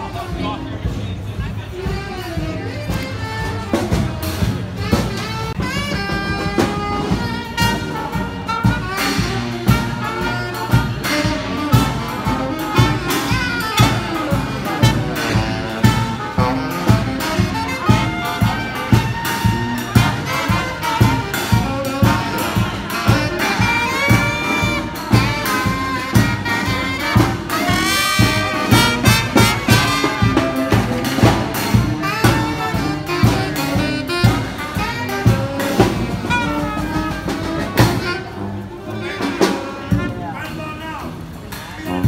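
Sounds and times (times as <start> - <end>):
jazz music with brass horns: 0.0 - 42.0.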